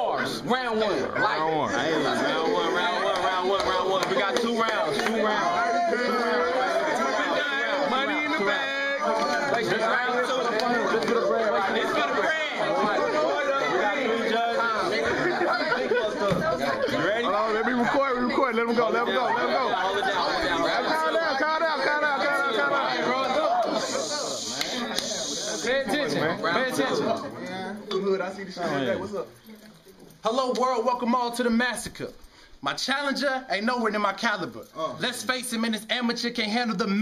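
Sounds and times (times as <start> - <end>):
people chattering indistinctly: 0.0 - 37.0.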